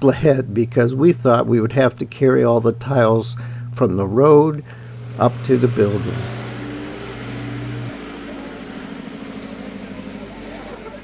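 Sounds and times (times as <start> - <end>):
deep steady hum: 0.0 - 11.0
truck engine driving past: 0.0 - 11.0.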